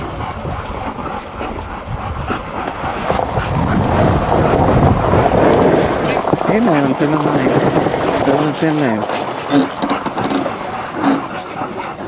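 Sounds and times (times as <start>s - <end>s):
wheels rattling over gravel: 0.0s - 11.6s
wind on microphone: 0.0s - 12.0s.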